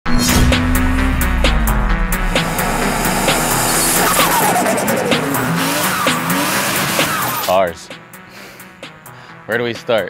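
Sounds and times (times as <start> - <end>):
background music: 0.1 - 10.0
car driving by: 0.6 - 7.5.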